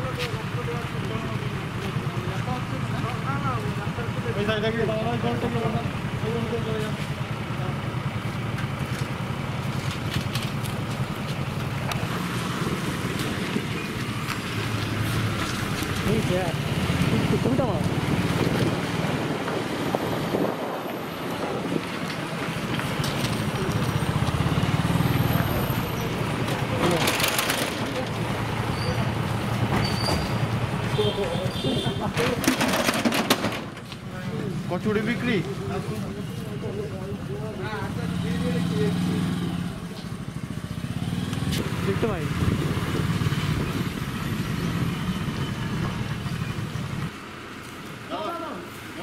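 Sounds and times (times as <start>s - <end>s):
people's voices: 0.0s - 8.3s, 21.5s - 40.2s, 48.0s - 49.0s
vehicle engine running: 0.0s - 31.4s.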